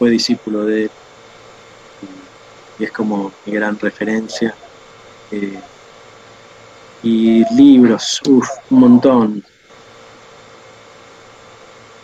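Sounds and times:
audio line hiss: 0.0s - 12.0s
faint steady hum: 0.0s - 12.0s.

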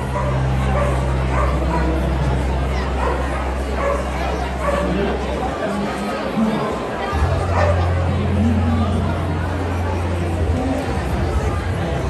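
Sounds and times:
crowd chatter: 0.0s - 12.0s
dog barking: 0.1s - 2.0s, 3.0s - 5.0s, 7.5s - 7.9s.

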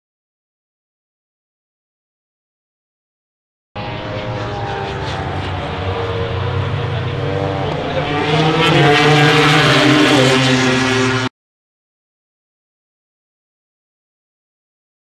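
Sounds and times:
racing motorcycles accelerating past: 3.8s - 11.3s.

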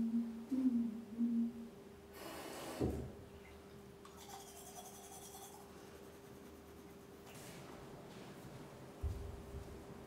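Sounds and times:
person humming: 0.0s - 1.7s
faint steady hum: 0.0s - 10.0s.

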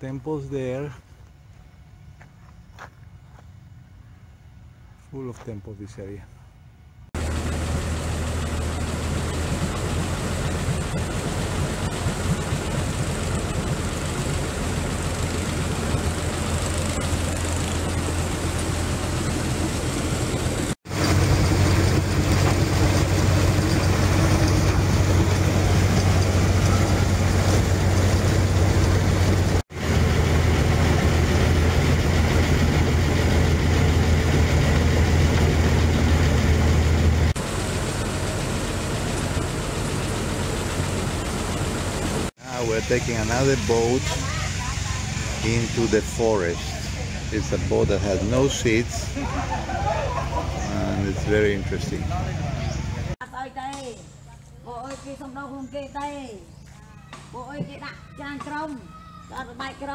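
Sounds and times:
wind: 0.0s - 59.9s
water rushing: 7.2s - 52.1s
motorboat engine drone: 7.2s - 53.2s.

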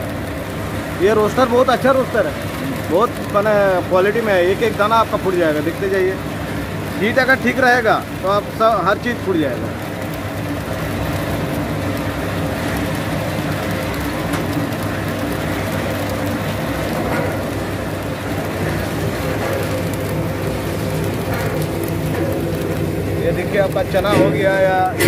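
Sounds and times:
motor hum: 0.0s - 25.0s
rice grains popping: 0.0s - 25.0s.

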